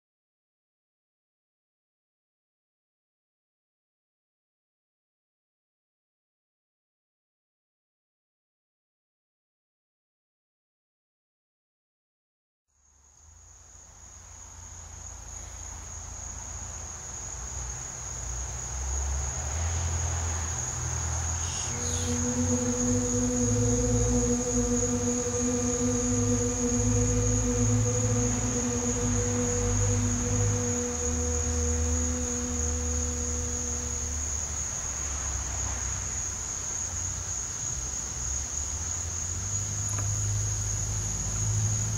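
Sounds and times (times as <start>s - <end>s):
high-pitched insect-like whine: 14.2s - 41.9s
low rumble: 21.3s - 35.4s.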